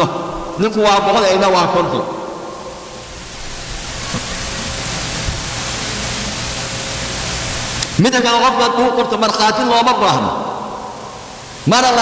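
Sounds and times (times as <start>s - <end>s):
steady static hiss: 0.0s - 12.0s.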